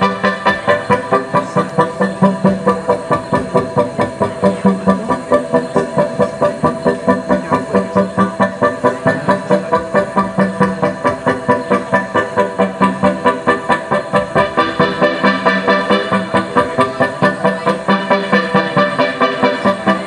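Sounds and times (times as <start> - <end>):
low droning tone: 0.0 - 20.0
synth pulse: 0.0 - 20.0.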